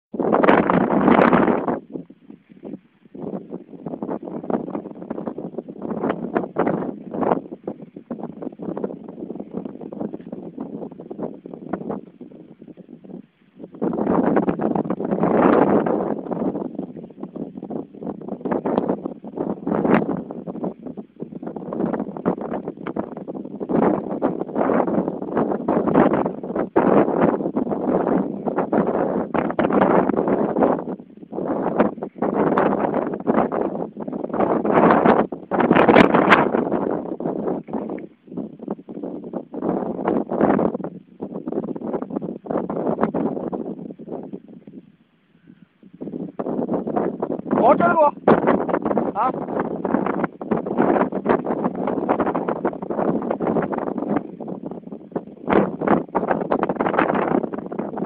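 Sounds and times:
wind buffeting microphone: 0.1s - 58.0s.

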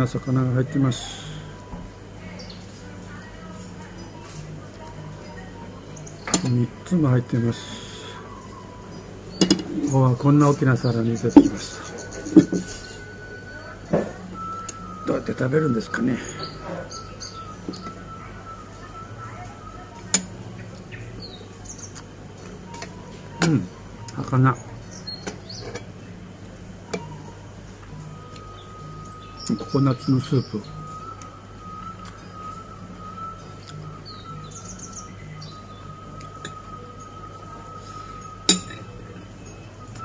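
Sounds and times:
birds chirping: 0.0s - 40.0s
metal spoon clinking a dish: 38.5s - 38.9s.

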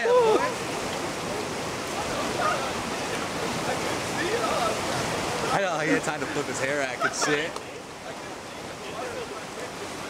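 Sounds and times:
river rapids rushing: 0.0s - 10.0s.

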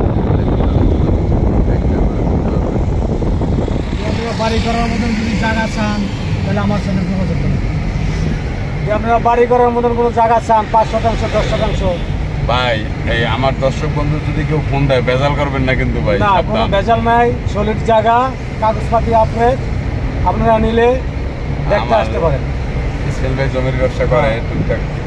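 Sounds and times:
engine and road rumble: 0.0s - 25.0s
men talking: 0.0s - 25.0s.

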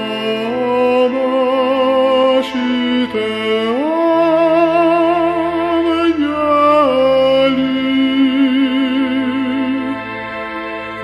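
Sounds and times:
sustained organ chords: 0.0s - 11.0s
tenor singing a hymn: 0.0s - 11.0s.

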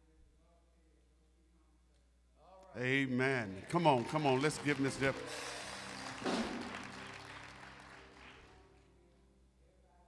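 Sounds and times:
congregation applauding: 2.8s - 9.0s.

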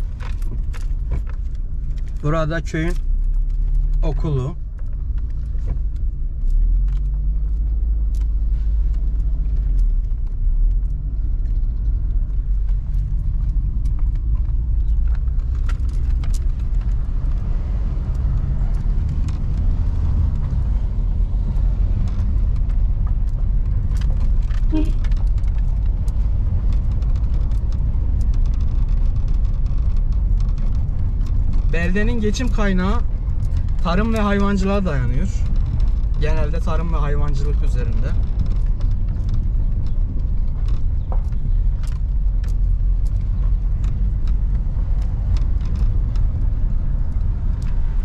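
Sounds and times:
car cabin rattles: 0.0s - 6.4s, 9.0s - 48.0s
car engine and tyre rumble: 0.0s - 48.0s.

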